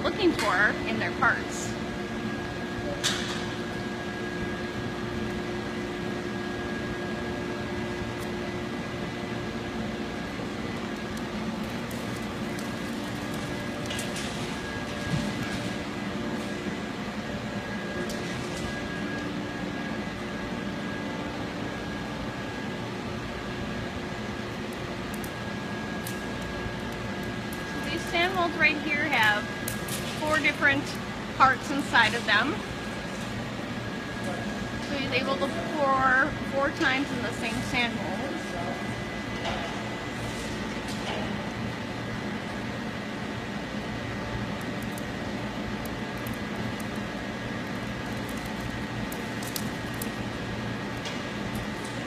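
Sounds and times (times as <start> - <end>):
machinery and fan hum: 0.0 - 52.0.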